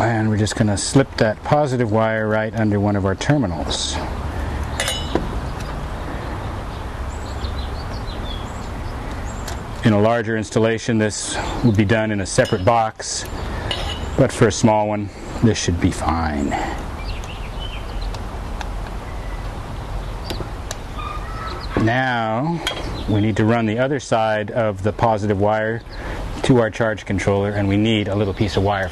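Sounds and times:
bird chirp: 2.3 - 18.3, 18.9 - 24.6, 25.6 - 28.9
small metallic clink: 4.8 - 5.2, 12.4 - 12.8, 13.7 - 14.2.

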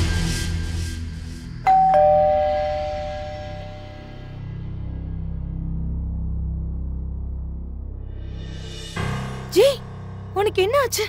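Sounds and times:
doorbell chime: 1.7 - 4.4.

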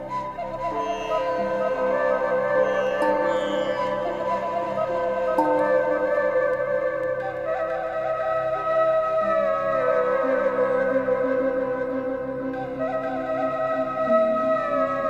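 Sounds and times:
ambient electronic music: 0.0 - 15.0.

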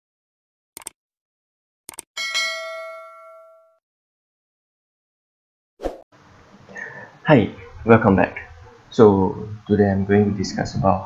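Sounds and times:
quick clicks: 0.8 - 1.0, 1.9 - 2.1
bell chime: 2.2 - 3.8.

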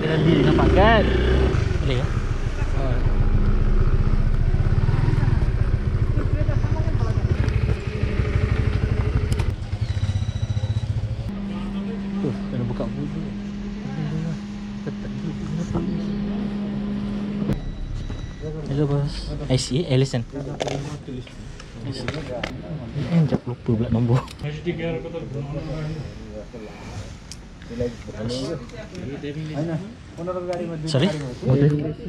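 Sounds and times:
motorcycle engine running: 0.0 - 22.5.

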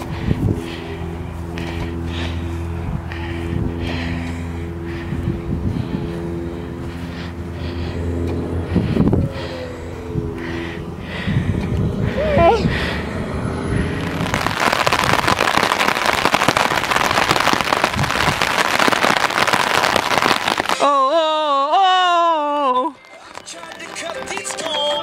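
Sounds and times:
wind buffeting the microphone: 0.0 - 7.0, 8.4 - 19.0.

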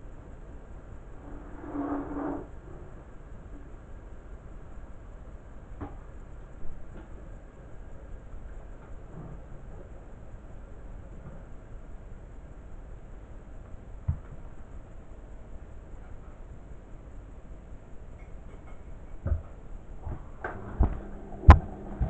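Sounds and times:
washing machine hum: 13.7 - 22.0
steady low rumble: 19.8 - 22.0.

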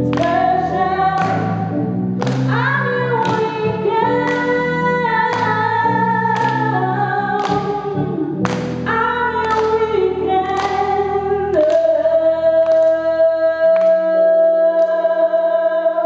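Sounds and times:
regular beat: 0.0 - 12.0
synthesizer keyboard chords: 0.0 - 14.6
woman singing: 0.0 - 16.0.

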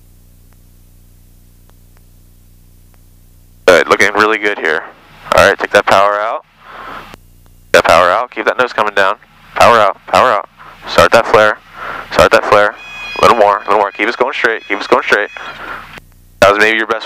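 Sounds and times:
person talking over intercom: 7.8 - 15.6
steady high tone: 12.2 - 16.6.

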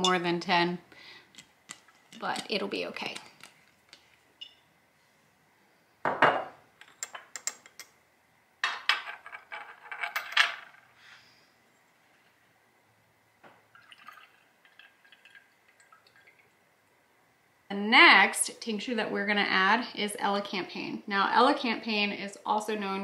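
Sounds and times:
glass clinking and knocking: 6.1 - 7.5
liquid trickling into bottle: 13.7 - 16.5.

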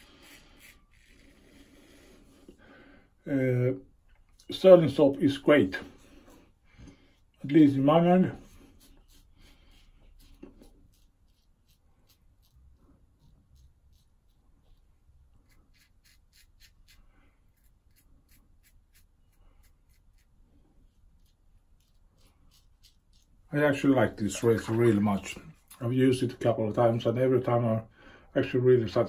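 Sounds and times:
razor scratching through stubble: 0.0 - 2.4, 7.2 - 25.8.

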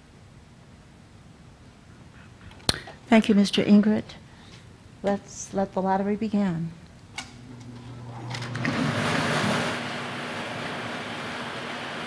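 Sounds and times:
blower motor hum and air whoosh: 7.4 - 12.0.

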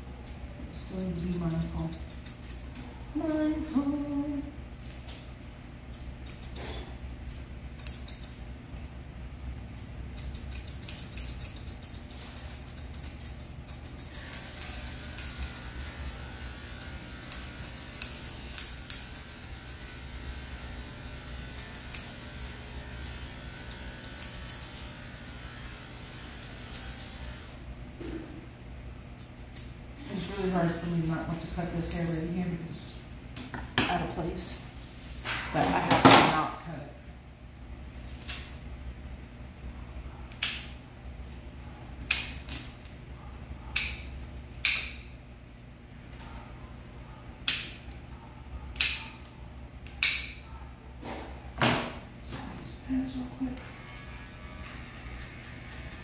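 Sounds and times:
steady low hum: 0.0 - 56.0
scissors snipping hair: 0.2 - 2.8, 5.9 - 8.5, 9.7 - 27.5, 29.2 - 29.8, 30.4 - 32.6, 40.3 - 41.4, 42.0 - 42.7, 43.7 - 45.0, 47.4 - 48.0, 48.7 - 50.5
woman speaking: 0.6 - 2.1, 3.1 - 4.5, 30.0 - 33.1, 33.8 - 34.7, 35.5 - 37.1, 52.3 - 53.7.

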